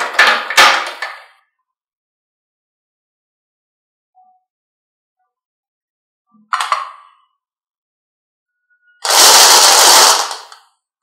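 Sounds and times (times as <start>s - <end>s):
marbles rattling in plastic cup: 9.0s - 10.6s.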